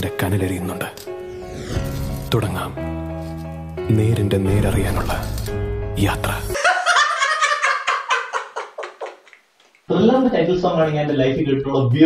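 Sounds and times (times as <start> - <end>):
men laughing hard: 6.6 - 9.3.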